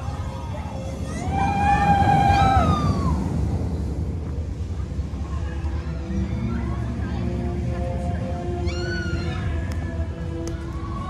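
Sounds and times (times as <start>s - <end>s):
background music with held notes: 5.4s - 11.0s.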